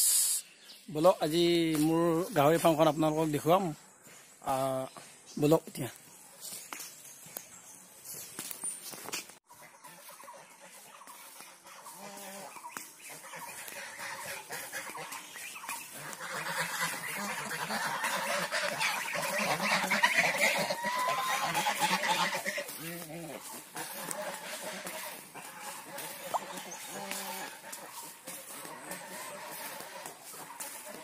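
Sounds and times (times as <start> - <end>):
waterfowl calling: 9.5 - 31.0.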